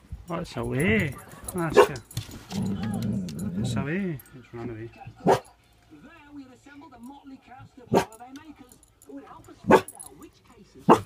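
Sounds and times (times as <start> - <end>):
dog barking: 1.7 - 2.0, 5.2 - 5.5, 7.9 - 8.2, 9.6 - 10.0.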